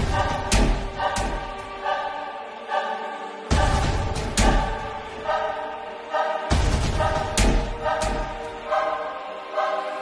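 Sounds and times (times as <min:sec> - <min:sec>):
choir holding sustained chords: 0:00.0 - 0:10.0.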